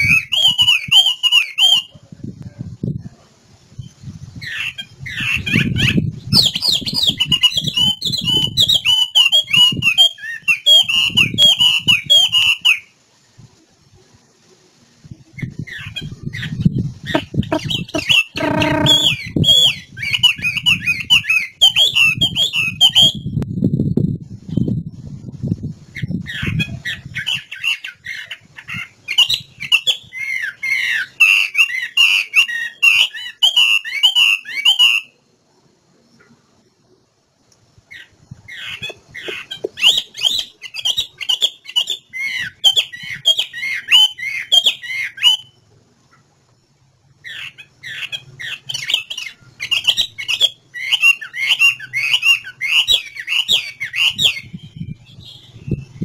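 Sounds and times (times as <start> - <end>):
bird singing whistled notes: 0.0 - 2.0, 3.7 - 13.0, 15.2 - 24.9, 26.0 - 35.3, 37.9 - 45.7, 47.2 - 56.0.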